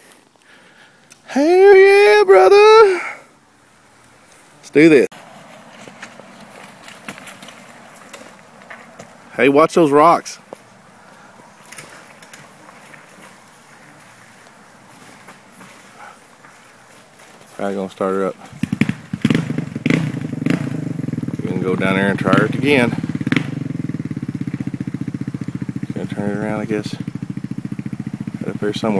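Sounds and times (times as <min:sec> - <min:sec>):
dirt bike engine idling: 0:00.4 - 0:28.9
tyres crunching over loose rock: 0:05.2 - 0:09.4, 0:10.4 - 0:19.4.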